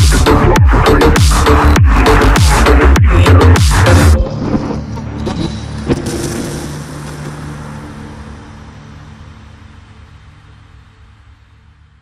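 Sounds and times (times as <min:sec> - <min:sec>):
low musical drone: 0:00.2 - 0:12.0.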